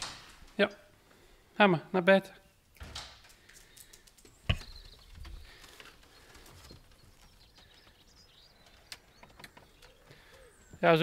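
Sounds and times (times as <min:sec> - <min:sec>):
distant birds chirping: 0:00.0 - 0:11.0.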